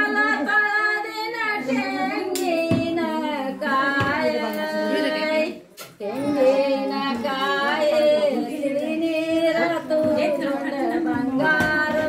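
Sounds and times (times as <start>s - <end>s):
women singing cradle song: 0.0s - 12.0s.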